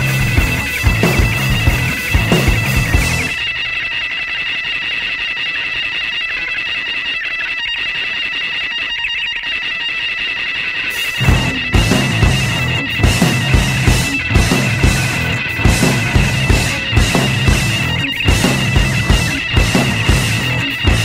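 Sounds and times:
noise rock band playing: 0.0s - 3.8s, 10.9s - 21.0s.

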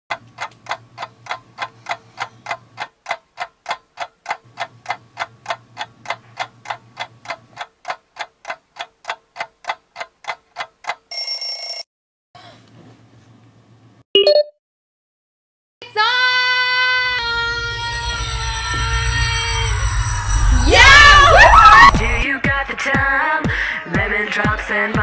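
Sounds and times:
clock ticking: 0.1s - 11.4s
shrill electronic alarm clock tone: 11.1s - 11.8s.

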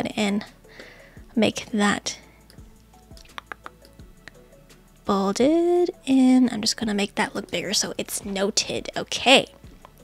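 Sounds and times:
faint background music: 0.0s - 10.0s
soft sharp clicks: 2.4s - 4.4s.

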